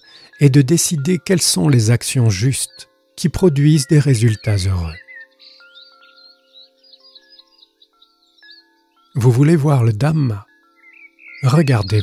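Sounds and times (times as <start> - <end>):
small birds chirping: 0.0 - 12.0
soft background music with chimes: 0.0 - 12.0.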